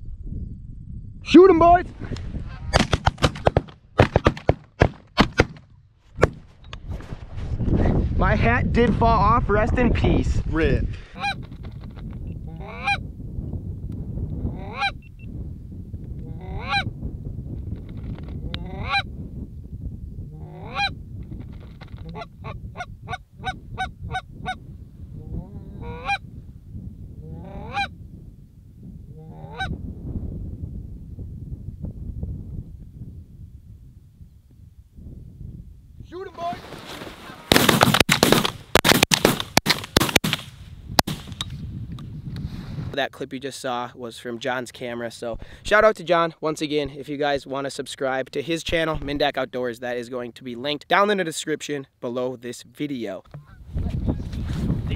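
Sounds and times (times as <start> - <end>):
shotgun blasts: 2.7 - 5.6, 37.4 - 41.4
geese honking: 11.2 - 11.4, 12.5 - 13.0, 14.6 - 15.0, 16.4 - 16.9, 18.6 - 19.1, 20.4 - 20.9, 25.8 - 26.2, 27.4 - 27.9, 29.2 - 29.7.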